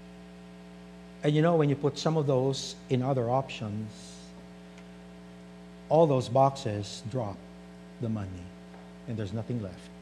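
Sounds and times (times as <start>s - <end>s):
electrical mains hum: 0.0s - 10.0s
man speaking: 1.2s - 4.3s, 5.9s - 7.4s, 8.0s - 9.9s.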